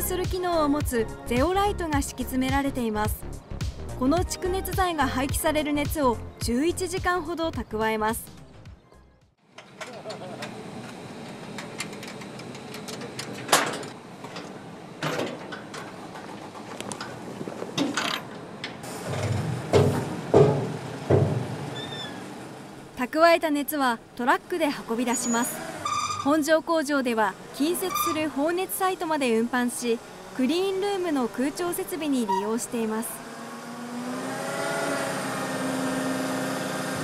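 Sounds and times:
truck engine and hydraulic pump drone: 0:09.5 - 0:37.0.

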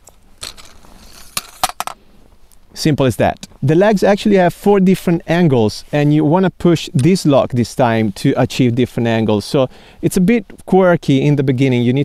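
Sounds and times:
faint hiss: 0:00.2 - 0:12.0.

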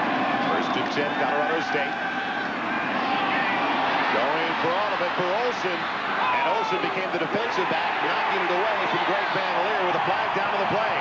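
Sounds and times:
stadium crowd hum of voices: 0:00.0 - 0:11.0.

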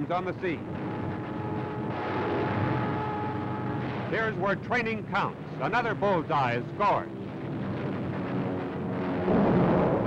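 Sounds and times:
faint steady tones: 0:00.0 - 0:10.0
explosion rumble and blast: 0:00.6 - 0:03.0, 0:07.2 - 0:10.0.

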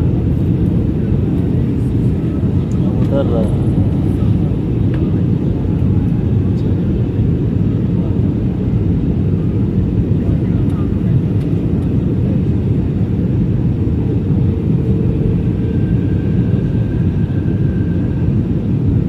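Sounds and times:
airliner cabin engine rumble: 0:00.0 - 0:19.0.

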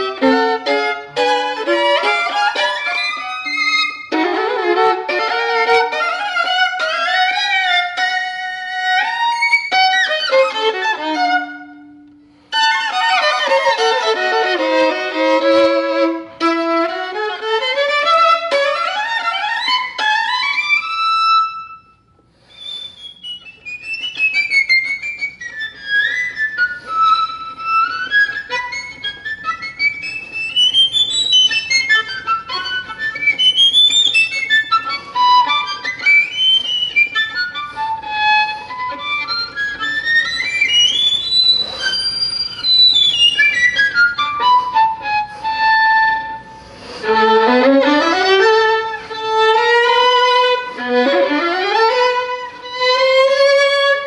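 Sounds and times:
violin playing fast runs: 0:00.0 - 0:21.8, 0:22.6 - 0:54.0.

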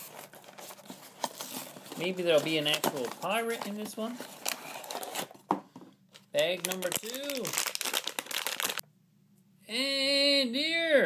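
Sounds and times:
foil bag rustling: 0:00.0 - 0:05.3, 0:06.2 - 0:08.8.

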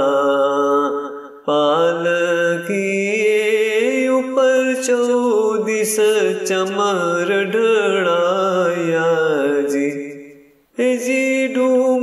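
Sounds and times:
person chanting a devotional hymn: 0:00.0 - 0:12.0.

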